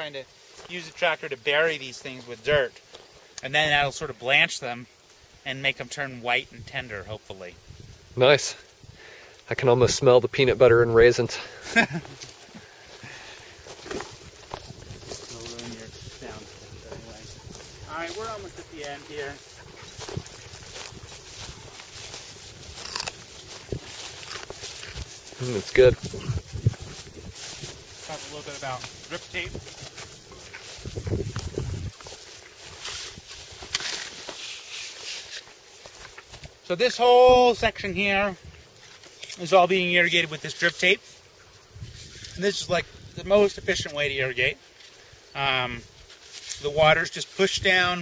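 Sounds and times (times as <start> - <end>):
rustling: 11.8 - 36.6
footsteps on soil: 11.8 - 37.1.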